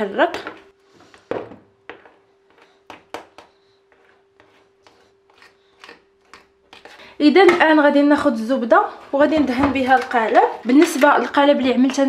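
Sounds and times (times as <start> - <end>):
spoon stirring batter in bowl: 1.7 - 7.8.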